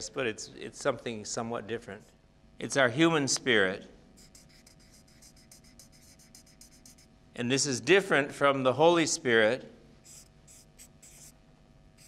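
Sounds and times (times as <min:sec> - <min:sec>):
marker scratching on paper: 0:04.2 - 0:07.1, 0:10.0 - 0:11.4.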